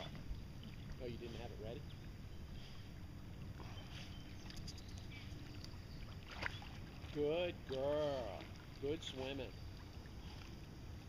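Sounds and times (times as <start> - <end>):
low steady rumble: 0.0 - 11.0
water lapping: 0.0 - 11.0
faint drips or small splashes: 3.4 - 11.0.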